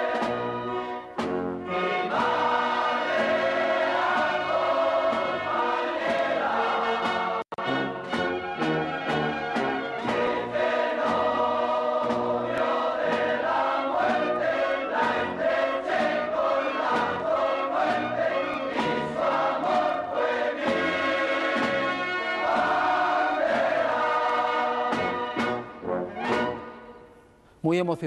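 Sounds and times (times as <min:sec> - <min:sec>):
steady drumbeat: 0:00.0 - 0:07.4, 0:08.0 - 0:26.7
choir singing march-like song: 0:00.0 - 0:27.1.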